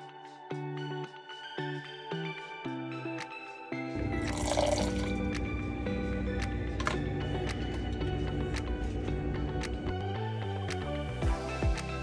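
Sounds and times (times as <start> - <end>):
background music: 0.0 - 12.0
water pouring into saucepan: 4.1 - 5.2.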